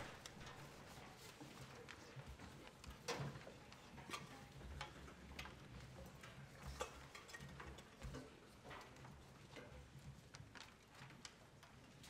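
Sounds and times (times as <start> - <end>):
footsteps on wooden stage: 0.0 - 1.0.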